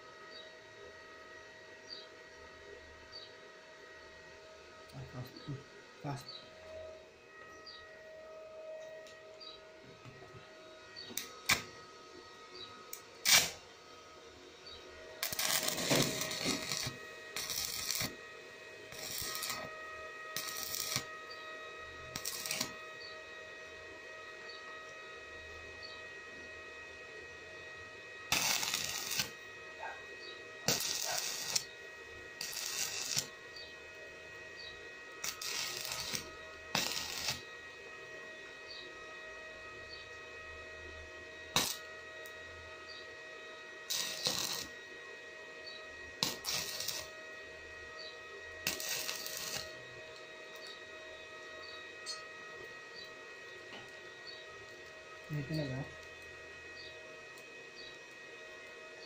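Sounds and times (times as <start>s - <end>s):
faint steady whine: 0.0s - 59.0s
welding arc crackling: 11.2s - 11.7s, 12.9s - 13.6s, 15.2s - 18.2s, 18.9s - 19.7s, 20.3s - 21.1s, 22.1s - 22.8s, 28.3s - 30.0s, 30.6s - 31.7s, 32.4s - 33.3s, 35.2s - 37.5s, 41.6s - 41.9s, 43.9s - 44.8s, 46.2s - 47.1s, 48.6s - 49.8s.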